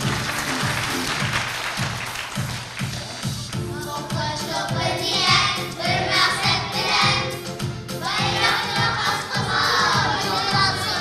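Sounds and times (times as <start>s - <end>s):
backing music with steady beat: 0.0s - 11.0s
children singing in unison: 3.9s - 11.0s.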